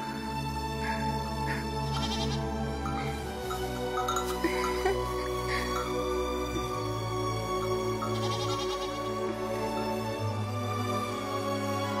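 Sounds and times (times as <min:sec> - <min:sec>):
soft background music: 0:00.0 - 0:12.0
lamb bleating: 0:01.9 - 0:02.5, 0:08.1 - 0:09.0.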